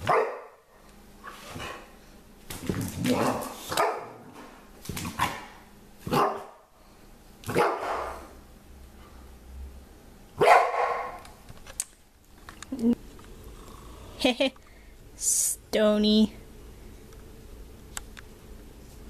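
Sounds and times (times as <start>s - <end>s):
dog barking: 0.0s - 0.6s, 3.1s - 4.2s, 5.2s - 6.7s, 7.5s - 8.3s, 10.4s - 11.2s.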